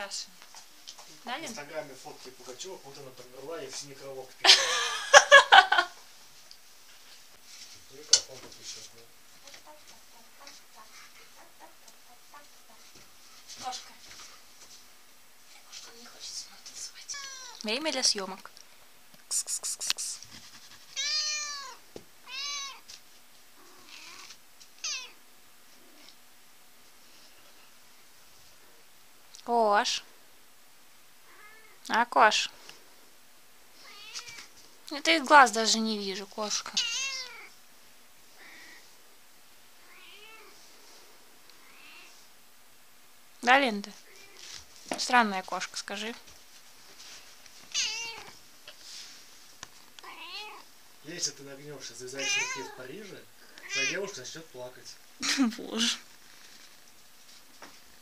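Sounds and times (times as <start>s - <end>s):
cat meowing: 17.1s - 17.6s, 21.0s - 22.9s, 23.6s - 25.2s, 31.3s - 31.8s, 33.8s - 34.5s, 36.6s - 37.5s, 39.8s - 40.6s, 41.6s - 42.1s, 47.7s - 48.4s, 50.0s - 50.7s, 52.2s - 52.8s, 53.6s - 54.1s.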